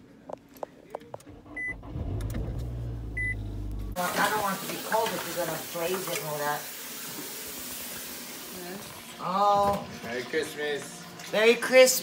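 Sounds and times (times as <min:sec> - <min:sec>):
car engine humming: 0:01.2 - 0:04.0.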